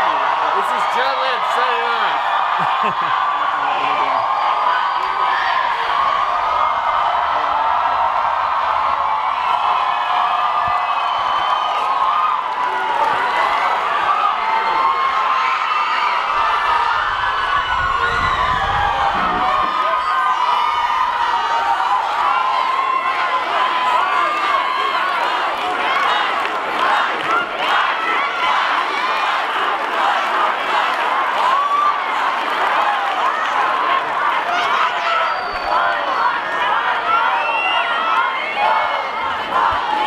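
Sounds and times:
crowd cheering and shouting: 0.0 - 40.0.

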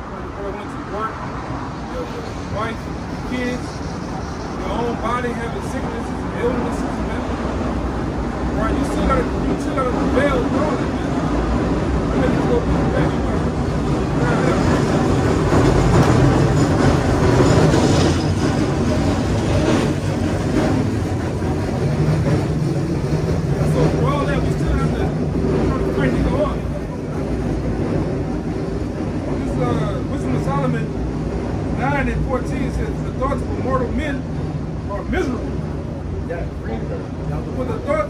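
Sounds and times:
passing traffic rumble: 0.0 - 38.0.

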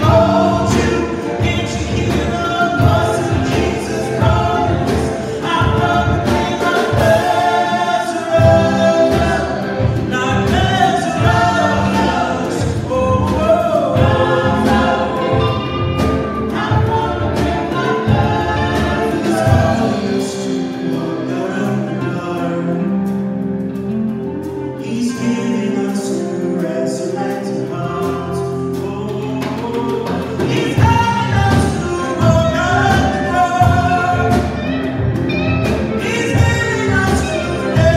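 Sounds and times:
drum kit beat: 0.0 - 22.1, 27.6 - 37.9
voices singing together: 0.0 - 22.8
electric bass: 0.0 - 37.9.

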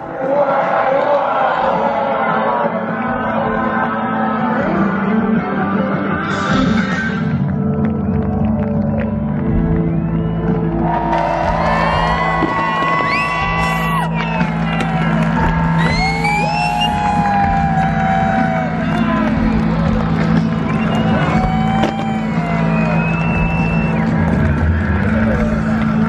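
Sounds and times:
live rock band: 4.4 - 26.0
crowd cheering and whooping: 8.2 - 26.0.

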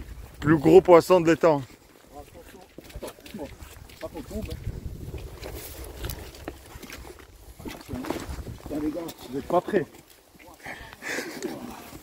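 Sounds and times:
wind rumbling on microphone: 0.0 - 1.0, 2.8 - 9.5.

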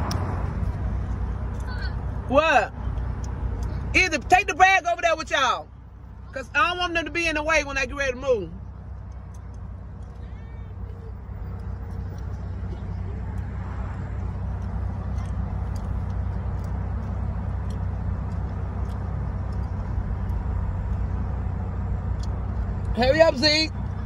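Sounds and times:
car engine idling: 0.0 - 24.0.

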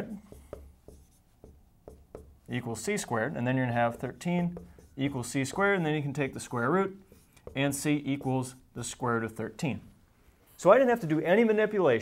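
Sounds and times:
marker writing on whiteboard: 0.0 - 9.8.

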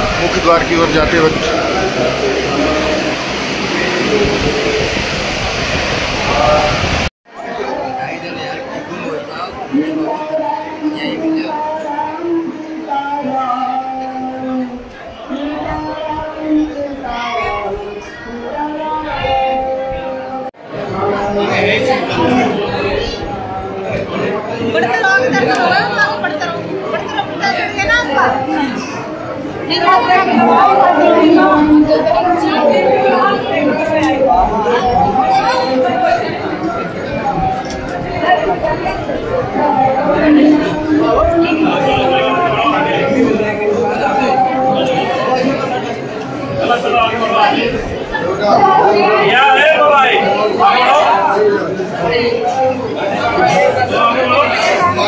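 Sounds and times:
crowd talking: 0.0 - 55.0.

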